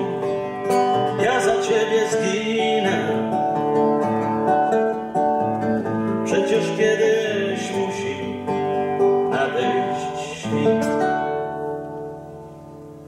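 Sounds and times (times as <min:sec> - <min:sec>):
classical guitar fingerstyle: 0:00.0 - 0:13.0.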